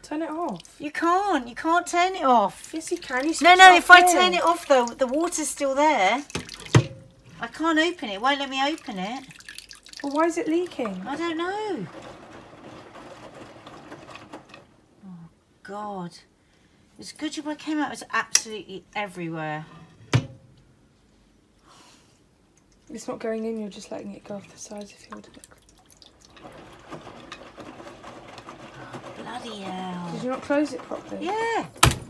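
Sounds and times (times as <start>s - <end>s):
water trickling into a metal saucepan: 0.0s - 7.5s, 8.2s - 11.1s, 22.6s - 27.4s
washing machine motor hum: 10.0s - 14.8s, 26.1s - 32.0s.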